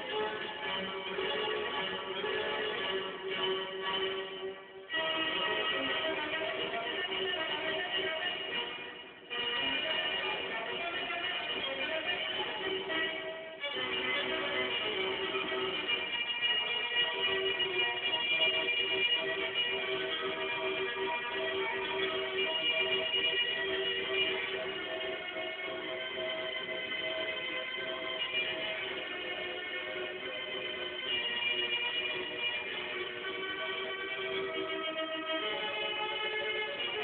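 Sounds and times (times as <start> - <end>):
music from a record player: 0.0 - 37.0.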